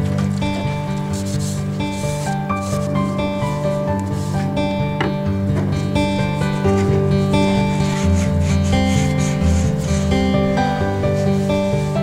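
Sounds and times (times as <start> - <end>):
paper towel rubbing metal part: 0.0 - 4.5, 5.8 - 12.0
background music with bass line: 0.0 - 12.0.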